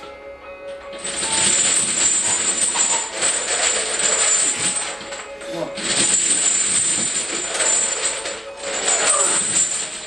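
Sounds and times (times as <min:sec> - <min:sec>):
background music: 0:00.0 - 0:10.0
chains clinking and rattling: 0:00.9 - 0:10.0.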